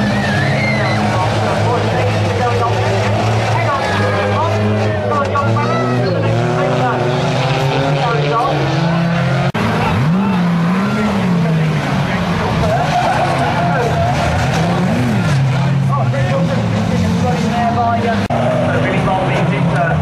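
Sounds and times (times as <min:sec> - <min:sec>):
racing car engines revving: 0:00.0 - 0:20.0
tyres squealing and skidding: 0:00.0 - 0:20.0.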